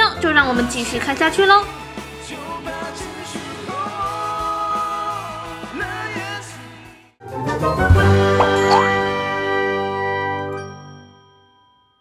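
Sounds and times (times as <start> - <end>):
outro jingle chord ringing: 8.2 - 9.6.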